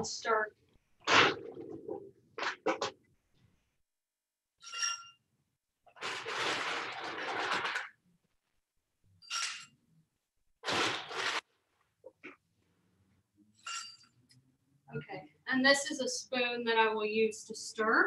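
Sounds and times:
ice rattling: 5.9 - 8.0, 10.6 - 11.4
ice clinking on glass: 9.2 - 9.7, 13.6 - 14.1.

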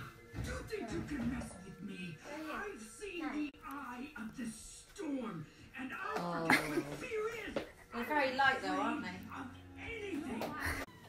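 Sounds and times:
television music: 0.0 - 11.0
television voices: 0.0 - 11.0.

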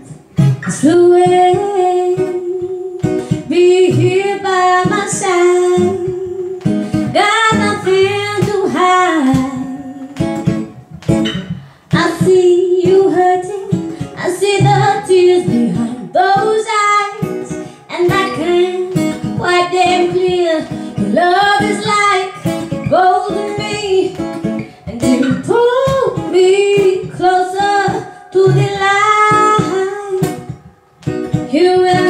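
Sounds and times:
woman singing: 0.0 - 10.8, 11.9 - 32.0
plucked acoustic guitar: 0.0 - 32.0.

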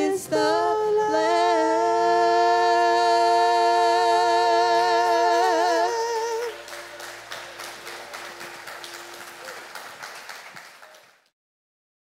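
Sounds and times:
women singing with vibrato: 0.0 - 6.7
congregation applauding: 5.1 - 11.3.

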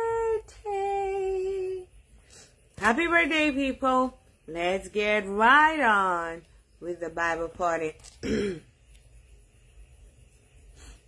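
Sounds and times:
woman clearing her throat: 8.2 - 8.7.

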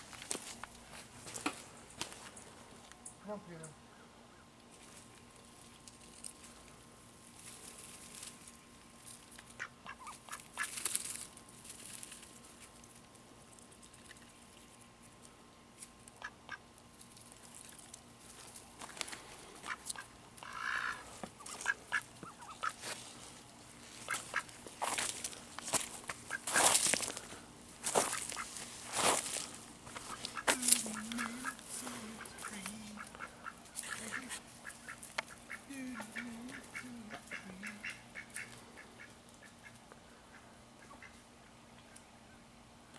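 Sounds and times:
ducks rooting in leaf litter: 0.0 - 42.1
soft low duck quacking: 19.6 - 22.8, 30.1 - 41.2.

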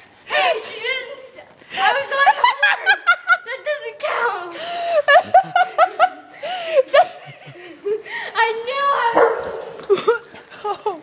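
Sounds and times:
dog yipping and barking: 9.1 - 9.8.

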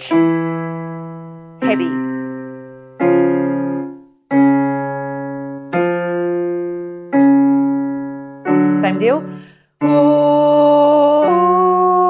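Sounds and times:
electronic keyboard chords: 0.0 - 12.0.

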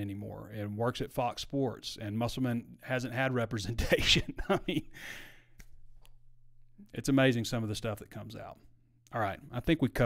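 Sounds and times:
low steady hum: 0.0 - 10.0
man laughing: 3.8 - 5.0.

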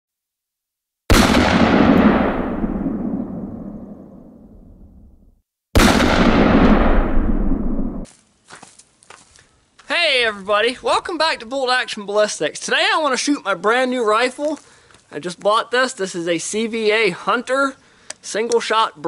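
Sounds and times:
loud bangs: 1.1 - 4.4, 5.8 - 8.1
faint clicks: 18.0 - 18.2.

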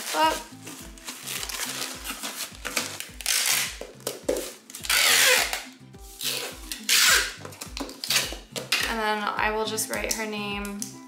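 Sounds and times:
packing tape pulled from dispenser: 0.0 - 3.8, 4.7 - 8.8
background music with steady beat: 0.0 - 11.0.

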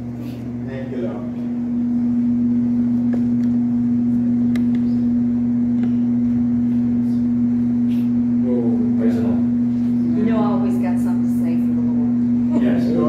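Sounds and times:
loud steady low hum: 0.0 - 13.0.

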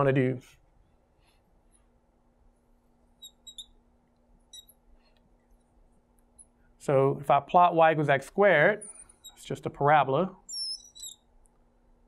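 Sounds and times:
marker squeaks on glass: 3.2 - 3.8, 4.4 - 5.2, 8.8 - 9.5, 10.4 - 11.3.

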